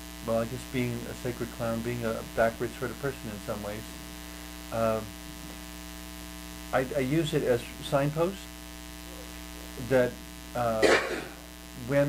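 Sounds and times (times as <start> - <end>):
electrical mains hum: 0.0 - 12.0
person talking: 0.2 - 4.0, 4.7 - 5.1, 6.8 - 8.5, 9.1 - 12.0.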